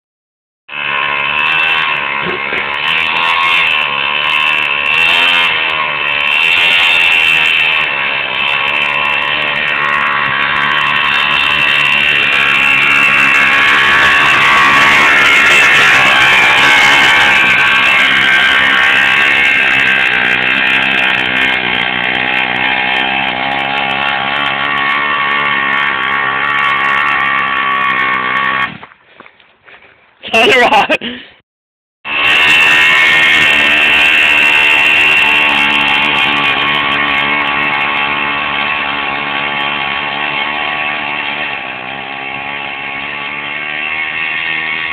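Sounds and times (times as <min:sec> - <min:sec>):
small two-stroke engine buzzing: 0:00.7 - 0:31.3, 0:32.0 - 0:44.9.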